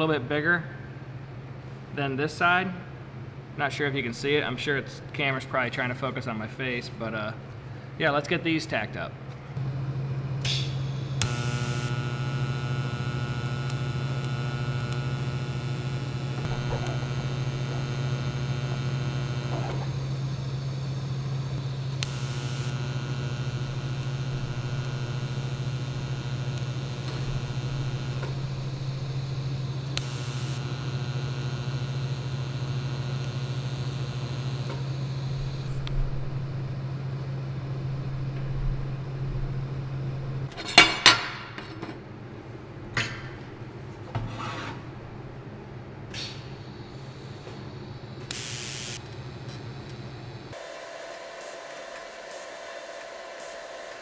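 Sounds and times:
steady low hum: 0.0 - 54.0
welding arc crackling and buzzing: 9.6 - 40.9, 46.1 - 54.0.

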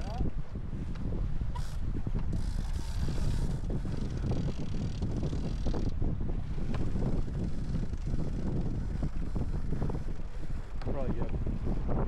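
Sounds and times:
water rushing along hull: 0.0 - 12.0
wind buffeting microphone: 0.0 - 12.0.

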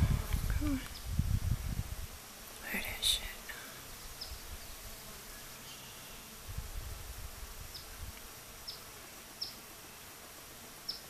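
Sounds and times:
bees buzzing: 0.0 - 11.0.

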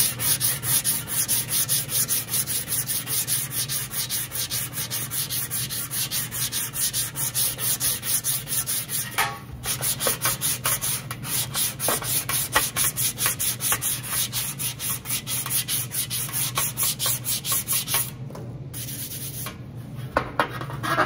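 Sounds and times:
sanding block rubbing sheet metal: 0.0 - 18.1.

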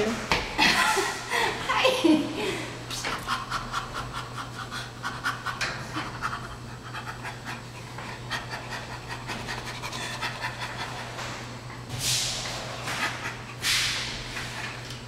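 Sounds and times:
chimpanzee breathy panting laughter: 3.1 - 11.2, 12.8 - 13.6.

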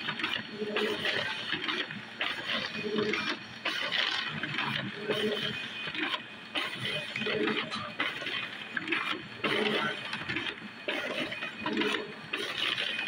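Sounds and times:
printer feeding paper: 0.0 - 13.0.

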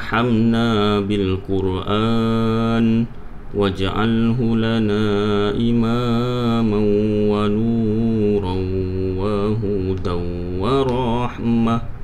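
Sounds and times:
man chanting a prayer: 0.0 - 12.0.

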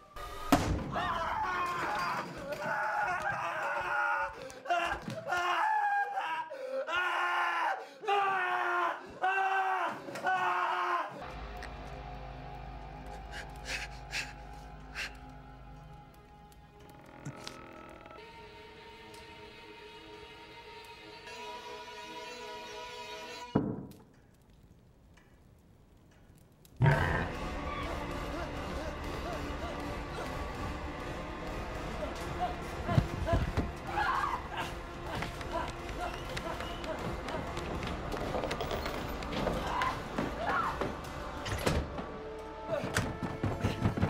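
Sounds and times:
young man screaming and wailing: 0.9 - 11.2, 32.4 - 36.1
faint clicks: 23.9 - 26.9.

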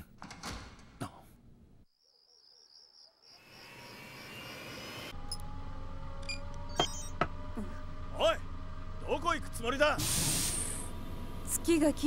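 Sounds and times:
short clicks and beeps: 6.2 - 7.2.

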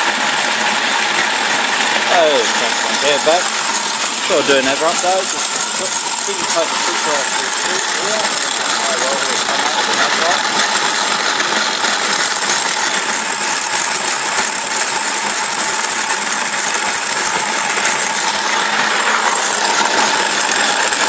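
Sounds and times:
grain mill grinding with metallic rattle: 0.0 - 21.0.

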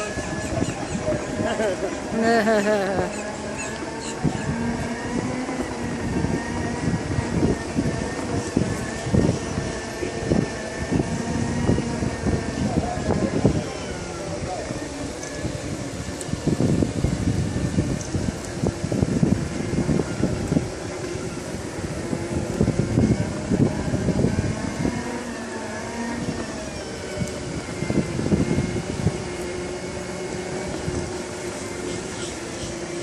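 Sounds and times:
electric drive whine: 0.0 - 33.0
wind rumbling on microphone: 0.0 - 33.0.

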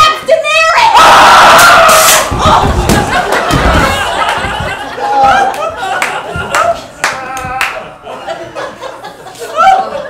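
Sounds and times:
people yelling and screaming: 0.2 - 4.1
low thuds: 2.2 - 5.4.

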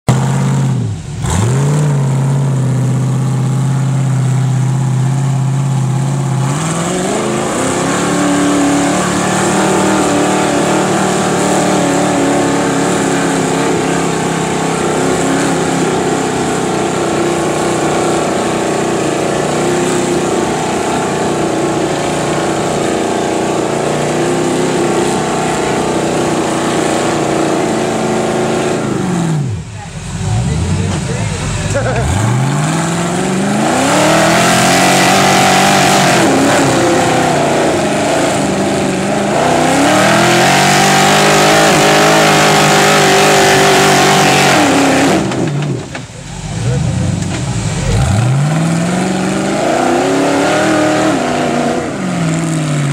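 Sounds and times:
buggy engine revving under load: 0.1 - 52.9.

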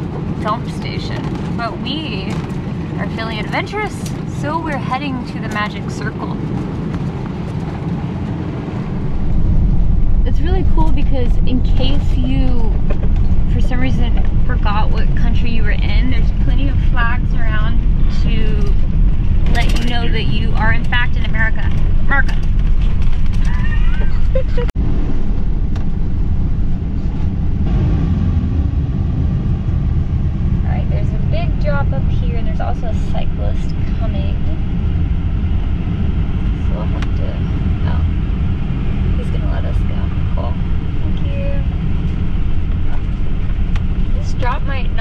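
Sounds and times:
engine and road noise rumble: 0.0 - 45.0.

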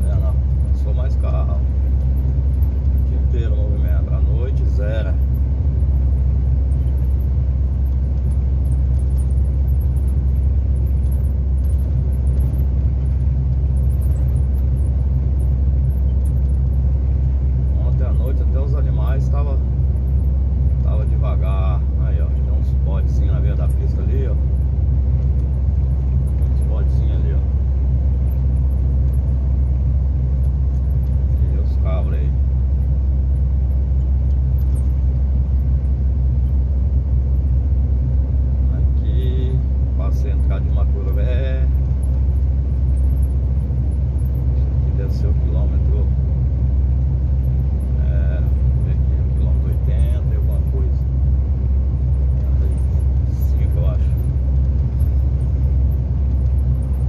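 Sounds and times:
truck engine drone: 0.0 - 57.0.

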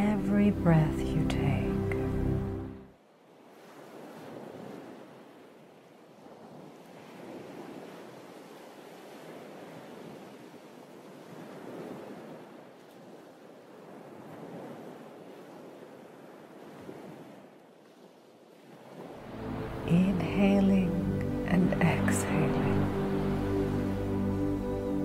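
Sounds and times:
waves washing on a beach: 3.0 - 25.0.

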